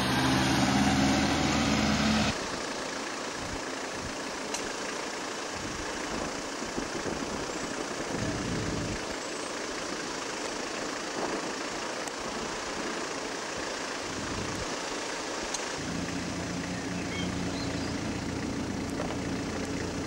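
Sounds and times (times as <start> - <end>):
heavy lorry passing close: 0.0 - 2.7, 15.8 - 20.0
car driving on road: 0.0 - 20.0.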